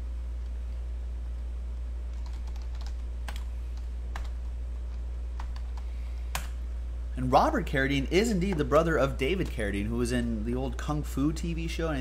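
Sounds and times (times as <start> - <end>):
steady low hum: 0.0 - 12.0
computer keyboard typing: 2.1 - 6.5.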